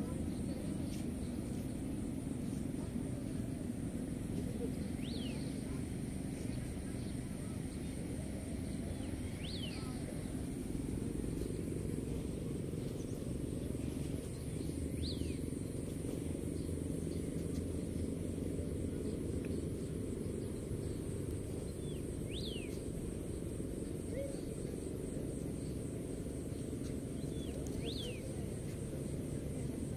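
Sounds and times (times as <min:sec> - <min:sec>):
low rumble: 0:00.0 - 0:29.9.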